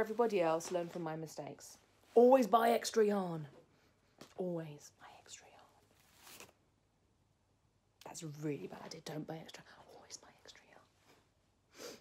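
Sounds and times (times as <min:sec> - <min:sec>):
woman whispering: 0:04.4 - 0:05.9, 0:08.1 - 0:11.2.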